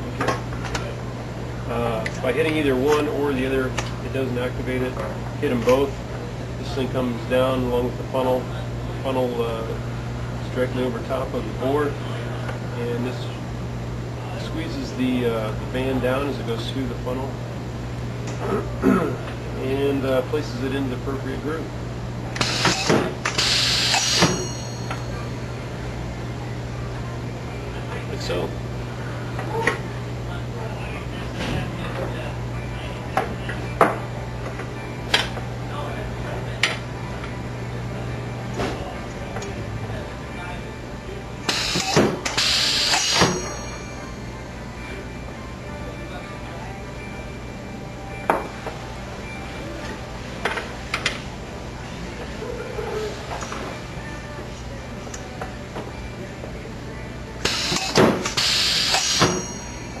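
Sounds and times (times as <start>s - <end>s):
pneumatic press air hiss: 22.4s - 24.4s, 41.5s - 43.4s, 57.4s - 59.4s.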